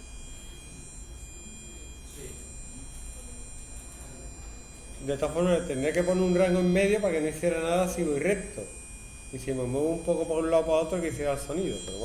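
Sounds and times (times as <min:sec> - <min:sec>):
thin buzzing tone: 0:00.0 - 0:12.0.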